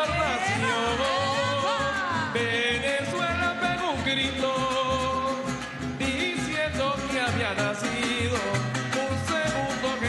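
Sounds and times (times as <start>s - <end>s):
backing voices: 0.0s - 10.0s
man singing lead: 0.0s - 10.0s
strummed guitar: 0.0s - 10.0s.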